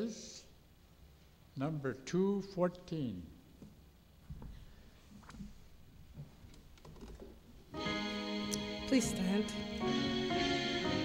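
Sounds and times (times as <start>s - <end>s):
faint rustling: 3.7s - 7.7s
instrument holding sustained chord: 7.8s - 11.0s.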